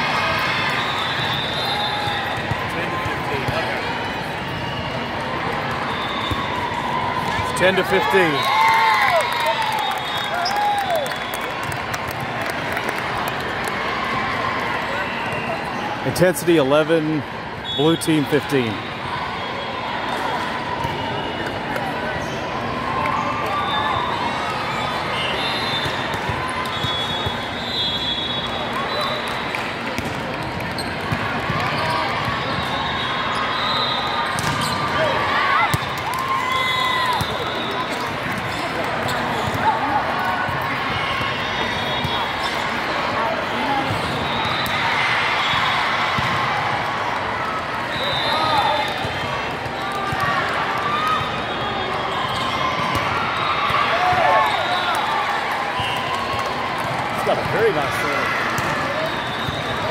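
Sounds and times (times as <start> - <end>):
crowd chatter and calls: 0.0 - 59.9
shoes squeaking on court: 30.7 - 33.6, 34.3 - 35.0, 37.2 - 39.7.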